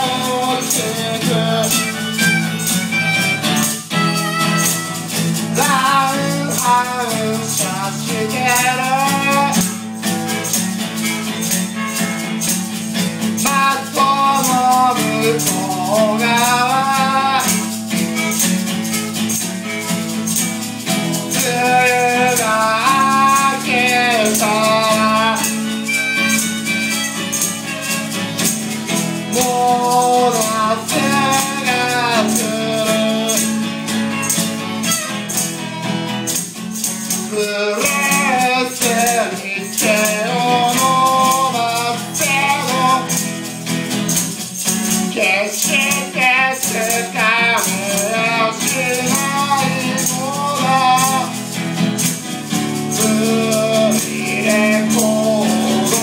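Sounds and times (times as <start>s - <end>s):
man singing: 0.0s - 35.4s, 37.0s - 56.0s
strummed acoustic guitar: 0.0s - 56.0s
tambourine shaken: 0.0s - 56.0s.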